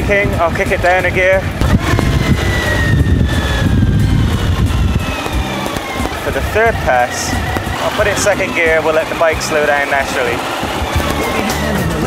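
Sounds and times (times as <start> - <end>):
motorcycle engine braking rumble: 1.6 - 12.0.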